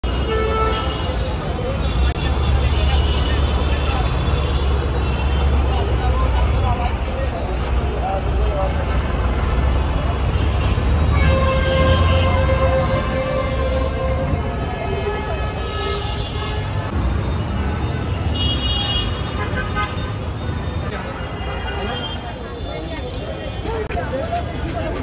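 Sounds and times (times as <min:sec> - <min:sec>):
traffic engines rumbling: 0:00.0 - 0:25.0
vehicle horn: 0:10.5 - 0:16.9, 0:18.3 - 0:20.2
long horn blast: 0:11.1 - 0:16.8.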